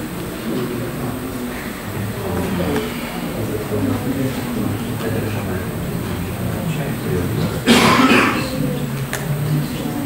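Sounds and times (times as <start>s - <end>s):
person coughing: 7.6s - 8.6s.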